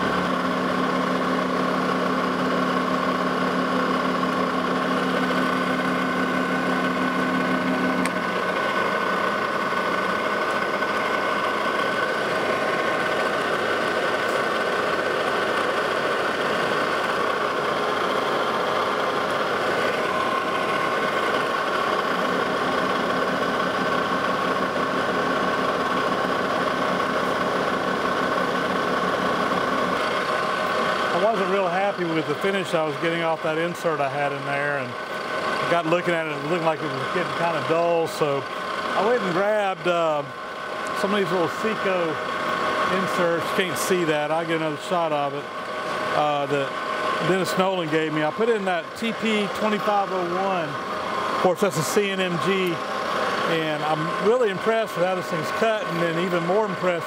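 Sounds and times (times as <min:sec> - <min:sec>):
metal lathe whine with cutting: 0:00.0 - 0:57.0.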